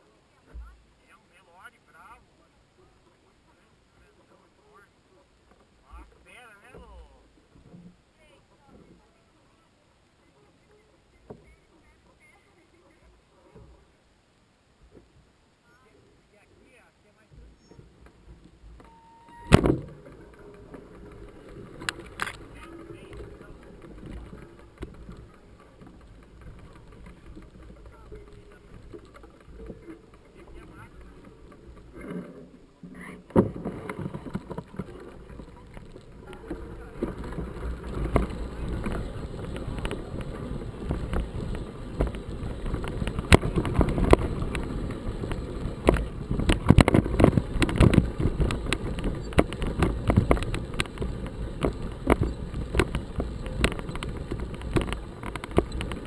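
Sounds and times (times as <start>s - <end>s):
bike clattering over rough ground: 17.4s - 56.0s.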